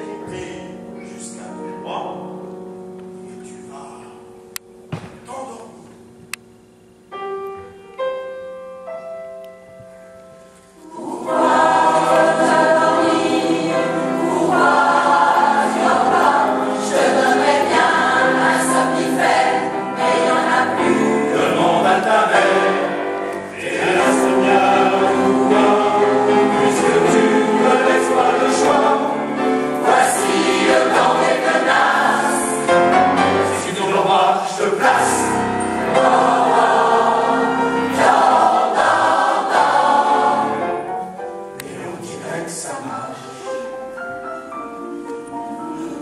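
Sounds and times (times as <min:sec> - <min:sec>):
choir singing lullaby: 0:10.5 - 0:46.0.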